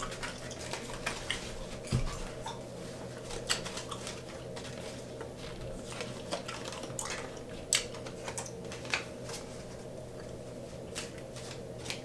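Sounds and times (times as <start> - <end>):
playing cards clicking and snapping: 10.9 - 12.0.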